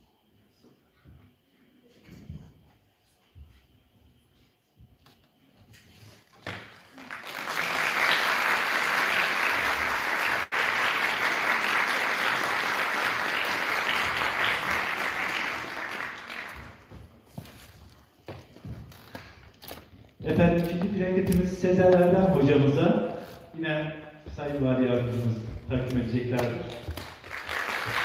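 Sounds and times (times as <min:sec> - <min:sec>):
audience applauding: 0:06.6 - 0:17.0, 0:26.4 - 0:28.0.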